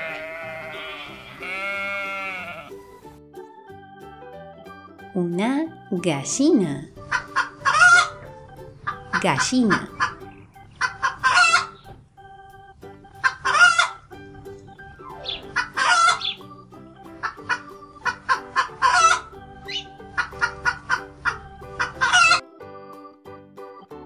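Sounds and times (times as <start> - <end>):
hen clucking and cackling: 0.0 - 2.8, 7.0 - 12.0, 13.0 - 22.4
soft background music: 0.0 - 24.0.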